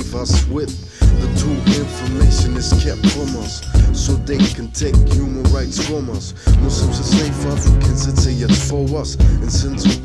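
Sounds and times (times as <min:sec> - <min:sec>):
bass: 0:00.0 - 0:10.0
rapping over a beat: 0:00.0 - 0:10.0.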